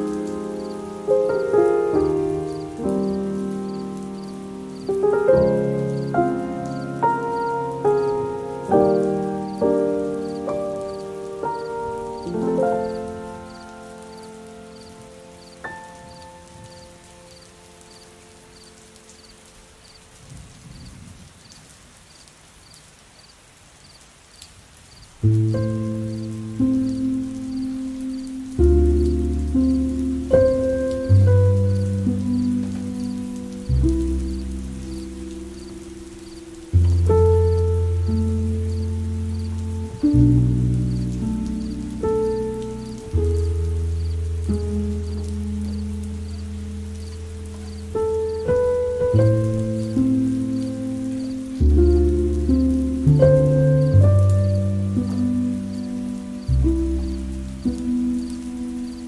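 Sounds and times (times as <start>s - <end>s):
soft solo piano: 0.0s - 19.0s, 25.2s - 59.0s
faint steady hiss: 0.0s - 59.0s.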